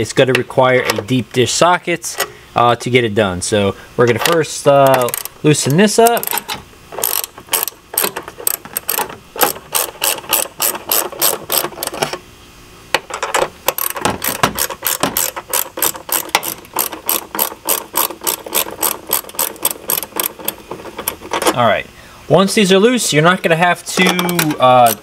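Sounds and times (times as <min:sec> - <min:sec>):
ratchet wrench clicking: 0:04.2 - 0:12.0, 0:13.7 - 0:21.4, 0:24.0 - 0:25.0.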